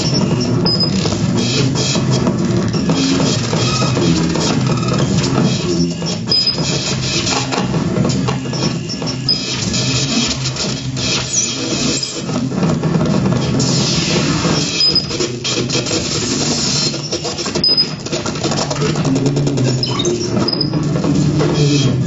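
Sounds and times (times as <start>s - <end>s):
electronic clicks and crackles: 0.0s - 22.0s.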